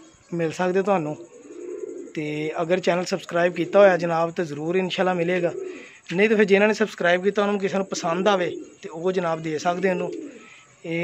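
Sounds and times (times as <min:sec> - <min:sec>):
pigeon cooing: 0:00.0 - 0:11.0.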